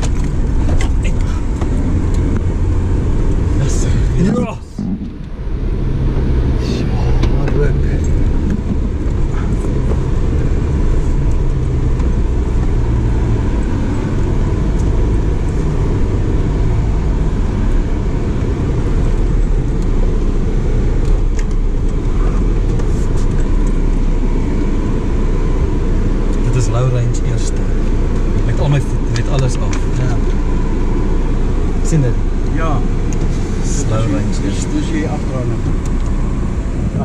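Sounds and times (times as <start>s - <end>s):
vehicle engine and tyres rumbling: 0.0s - 37.0s.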